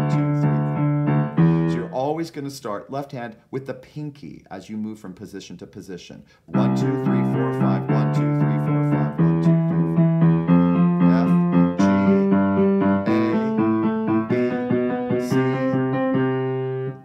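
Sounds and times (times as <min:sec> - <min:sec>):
piano broken octaves: 0:00.0 - 0:02.0, 0:06.5 - 0:17.0.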